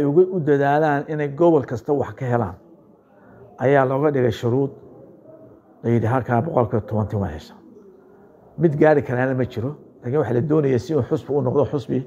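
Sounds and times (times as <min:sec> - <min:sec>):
man speaking: 0:00.0 - 0:02.6, 0:03.5 - 0:04.8, 0:05.8 - 0:07.7, 0:08.6 - 0:12.0
faint bird cooing: 0:02.5 - 0:11.2.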